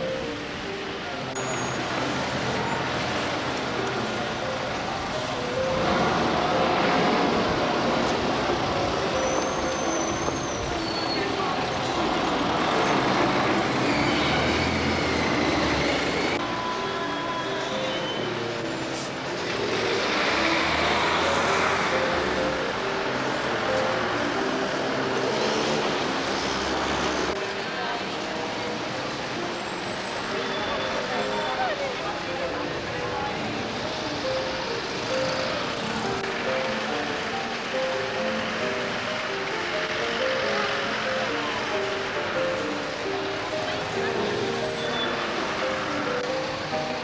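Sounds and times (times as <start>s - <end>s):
traffic passing: 0.0s - 47.0s.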